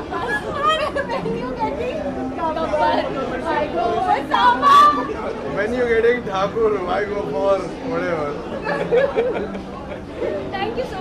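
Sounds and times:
women laughing and chattering: 0.0s - 5.8s, 7.9s - 11.0s.

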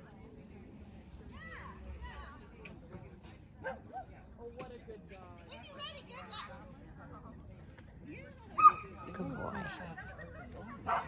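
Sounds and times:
dog barking: 3.6s - 4.1s.

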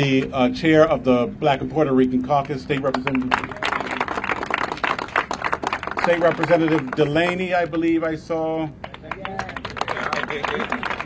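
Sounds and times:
crowd applauding: 2.4s - 11.0s.

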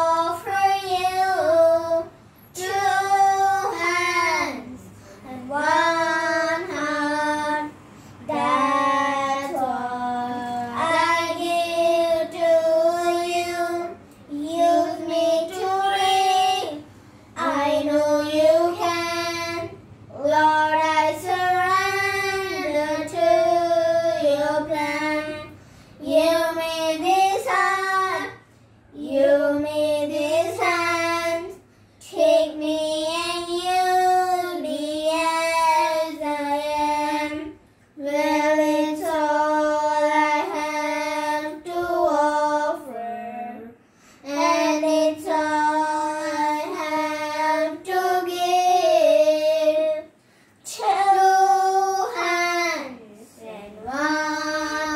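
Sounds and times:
children singing unaccompanied: 0.0s - 54.9s.

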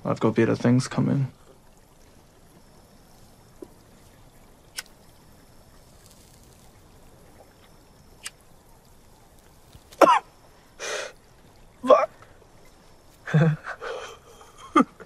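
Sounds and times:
person coughing: 10.0s - 10.3s.

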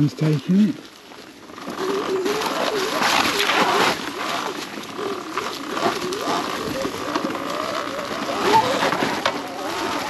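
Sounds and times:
electric motorbike motor whining: 0.8s - 10.0s.

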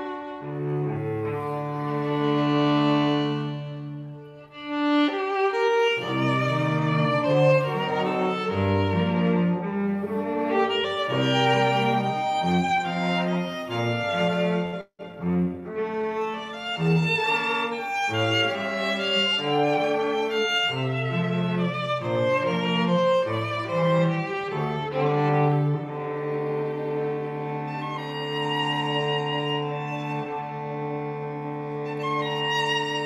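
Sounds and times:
violins and cello playing: 0.0s - 33.0s.

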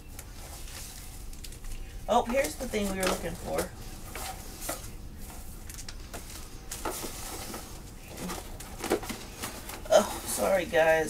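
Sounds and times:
plastic packaging rustling: 0.0s - 11.0s.

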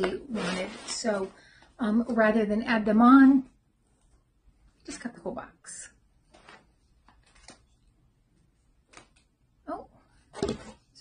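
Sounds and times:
packaging rustling: 0.0s - 1.4s.

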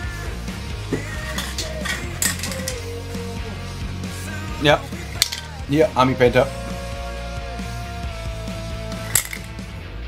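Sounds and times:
rock music: 0.0s - 10.0s
small hard objects clinking: 1.2s - 2.9s, 5.2s - 5.6s, 9.0s - 9.6s.

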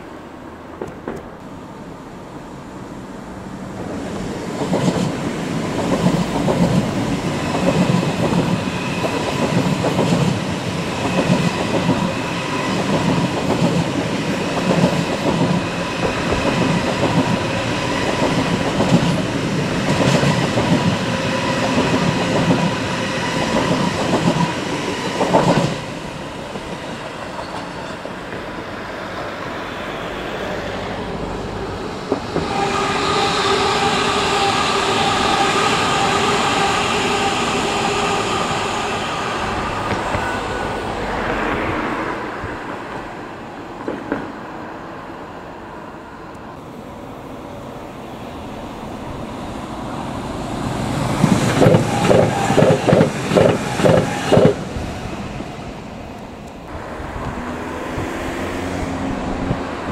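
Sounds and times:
train wheels rumbling on rails: 3.4s - 44.7s, 48.3s - 59.9s.

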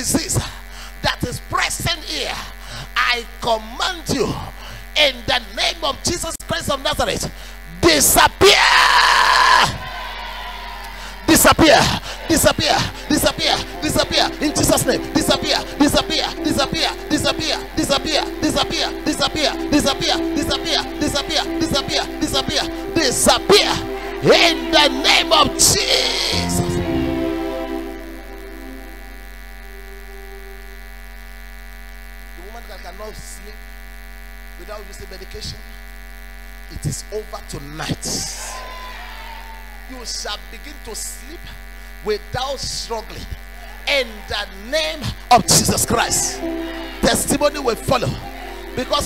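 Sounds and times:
electrical mains hum: 0.0s - 49.0s
long held shout: 8.4s - 16.4s, 23.3s - 28.0s, 38.4s - 39.9s, 45.9s - 49.0s
soft background music: 12.3s - 30.8s, 45.5s - 49.0s.

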